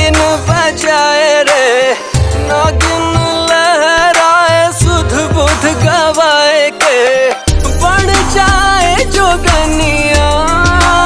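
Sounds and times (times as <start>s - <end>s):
deep bass beat: 4.6s - 6.2s, 7.5s - 11.0s.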